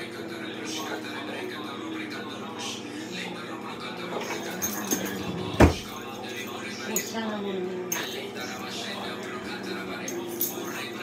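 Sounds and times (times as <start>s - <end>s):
metal drawer banging shut: 5.2s - 5.9s.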